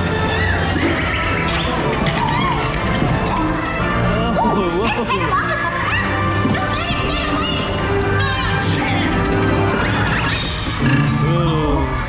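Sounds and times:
soundtrack music over speakers: 0:00.0 - 0:12.0.

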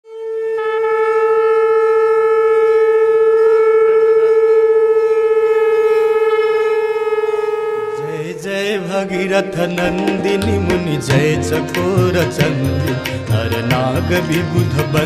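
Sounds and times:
conch shell blown: 0:00.0 - 0:09.0.

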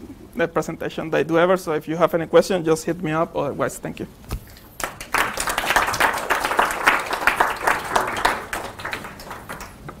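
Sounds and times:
audience applauding: 0:04.8 - 0:10.0.

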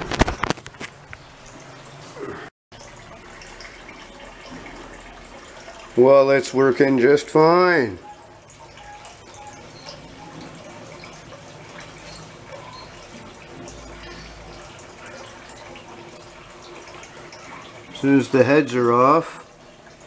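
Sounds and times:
small pump running: 0:00.0 - 0:20.0
water trickling: 0:00.0 - 0:20.0.

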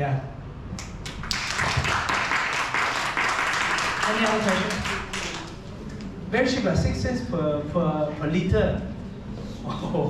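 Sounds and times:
small audience clapping: 0:00.8 - 0:06.1.

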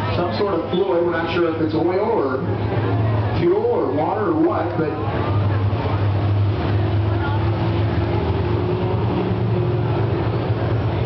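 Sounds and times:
people talking in stands: 0:00.0 - 0:11.0
race car engines droning: 0:00.0 - 0:11.0.

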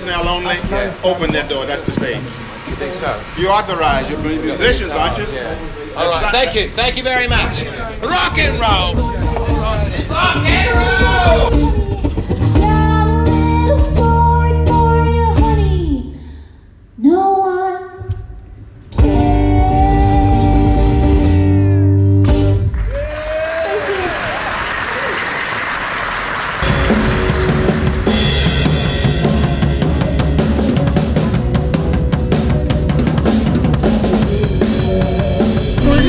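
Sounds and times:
drum kit steady beat: 0:07.2 - 0:13.2, 0:26.6 - 0:36.0
live band music: 0:07.4 - 0:15.8, 0:19.0 - 0:22.8, 0:26.6 - 0:36.0
person singing: 0:19.0 - 0:21.4, 0:34.0 - 0:36.0.

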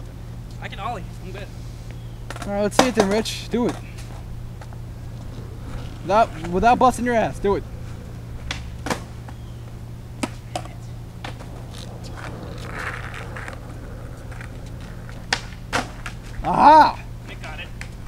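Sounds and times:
steady low hum: 0:00.0 - 0:18.0
skateboard clacking on concrete: 0:02.3 - 0:06.5, 0:10.2 - 0:16.4.

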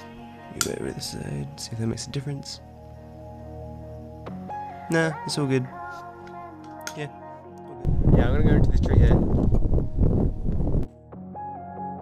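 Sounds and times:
calm ambient music: 0:00.0 - 0:12.0
wind buffeting microphone: 0:07.8 - 0:10.9.

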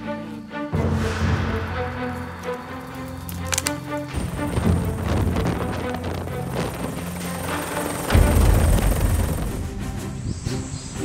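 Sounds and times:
background music: 0:00.0 - 0:11.0
helicopter rotor and engine hum: 0:00.1 - 0:11.0.

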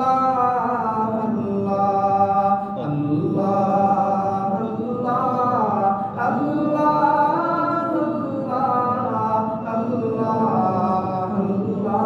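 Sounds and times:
man chanting devotional song: 0:00.0 - 0:12.0.

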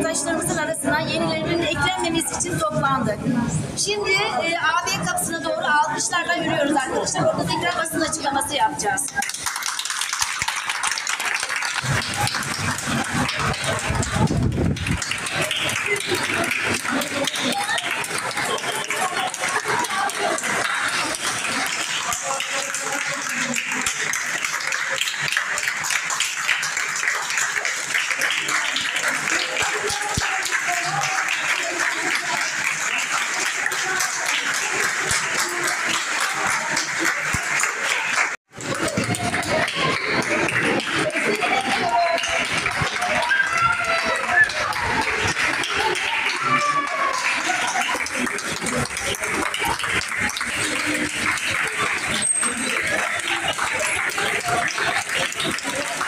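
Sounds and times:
voices: 0:00.0 - 0:09.8, 0:10.9 - 0:56.0
crowd clapping: 0:06.8 - 0:56.0.

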